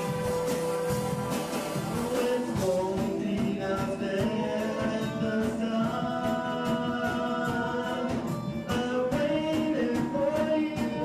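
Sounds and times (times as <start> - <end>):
drum kit steady beat: 0.0 - 11.0
electric guitars sustaining notes: 0.0 - 11.0.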